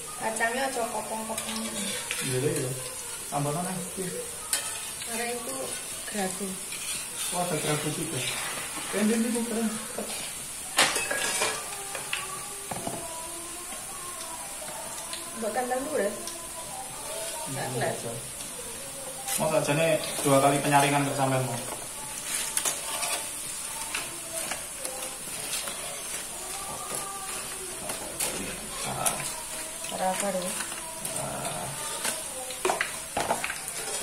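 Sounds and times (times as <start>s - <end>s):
food sizzling in hot oil: 0.0s - 34.0s
metal spatula scraping wok: 1.2s - 2.8s, 4.4s - 10.4s, 22.0s - 31.2s, 33.6s - 34.0s.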